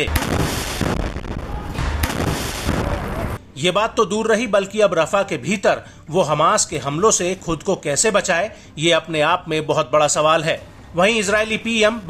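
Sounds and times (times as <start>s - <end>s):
deep explosion thuds: 0.0s - 3.4s
gunfire crackle: 0.0s - 3.4s
heavy rumble: 0.0s - 3.4s.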